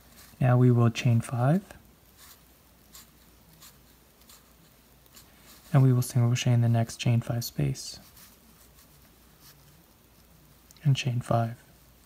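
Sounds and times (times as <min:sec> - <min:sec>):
soft rustles of crochet thread: 0:00.0 - 0:12.0.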